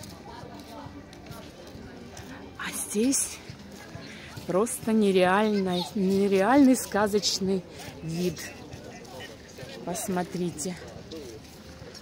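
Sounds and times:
faint voices talking: 0.0 - 12.0
outdoor ambience: 0.0 - 12.0.

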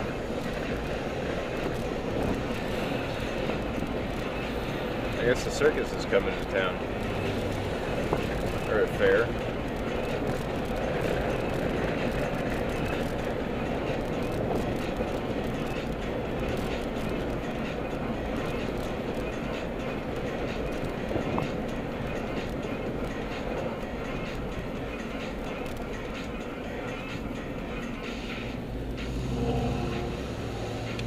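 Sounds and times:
road and engine noise in car: 0.0 - 31.0.

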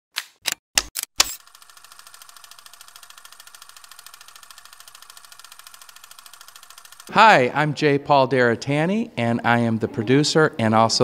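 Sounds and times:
fast even ticking: 1.5 - 7.3.

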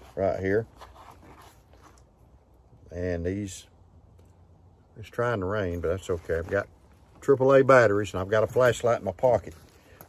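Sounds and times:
nylon pouch rustling: 0.0 - 2.2
quiet outdoor background: 0.0 - 10.0
man speaking: 2.9 - 3.7, 5.0 - 9.6.

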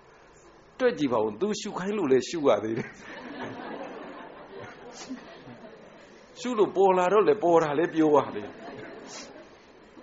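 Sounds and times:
steady background hiss: 0.0 - 10.0
murmur of voices: 2.8 - 10.0.

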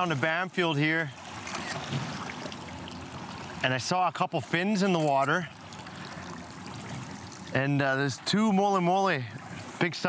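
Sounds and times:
water lapping against boat hull: 0.0 - 10.0.

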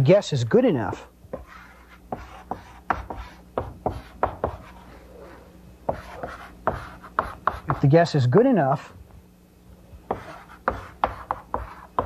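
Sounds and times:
chalk tapping on chalkboard: 1.3 - 4.8, 5.9 - 7.8, 10.1 - 12.0
chalk scraping on chalkboard: 1.3 - 7.8, 10.1 - 12.0.

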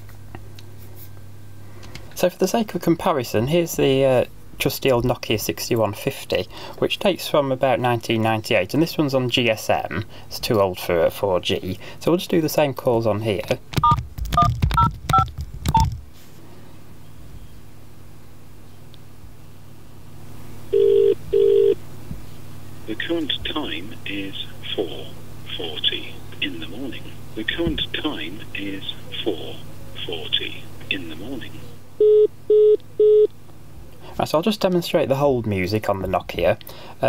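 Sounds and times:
double ring tone: 20.8 - 21.8
short beeps over phone line: 32.0 - 33.3.

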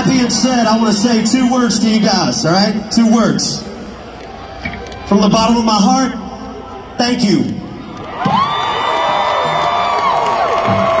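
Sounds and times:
concert crowd cheering: 0.0 - 11.0.

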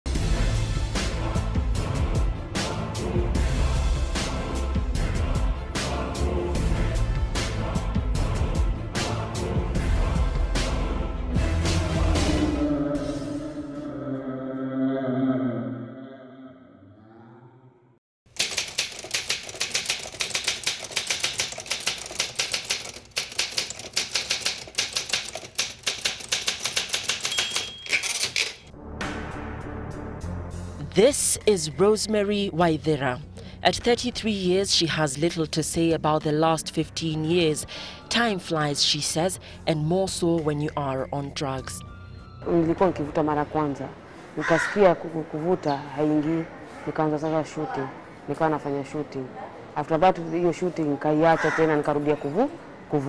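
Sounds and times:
music: 0.1 - 13.6, 28.7 - 43.7
typewriter key clacks: 18.3 - 28.7
woman speaking: 30.8 - 41.8, 42.4 - 53.0.

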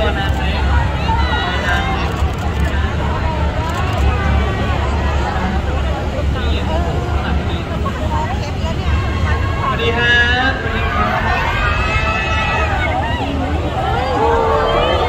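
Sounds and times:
crowd talking and calling out: 0.0 - 15.0.

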